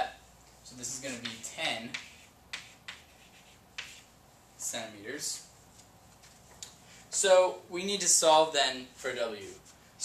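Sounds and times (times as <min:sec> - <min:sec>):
chalk strokes on chalkboard: 0:00.8 - 0:04.1.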